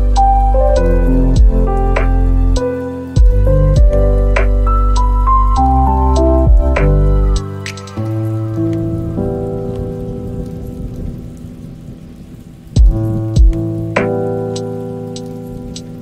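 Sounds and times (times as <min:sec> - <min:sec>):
slow relaxation music: 0:00.0 - 0:16.0
steady rain: 0:00.0 - 0:16.0
deep low thump: 0:01.4 - 0:02.3, 0:03.2 - 0:04.6, 0:06.4 - 0:07.0, 0:12.8 - 0:14.1.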